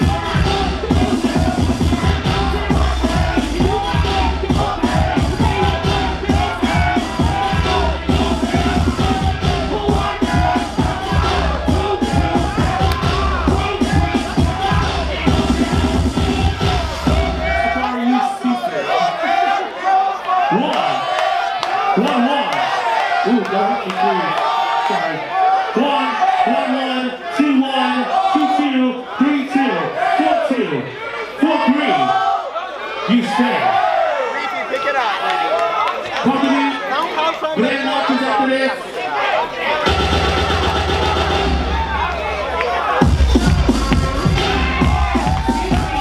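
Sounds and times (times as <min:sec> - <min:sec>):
dance music with heavy bass: 0:00.0 - 0:18.4, 0:39.8 - 0:46.0
crowd cheering and shouting: 0:00.0 - 0:46.0.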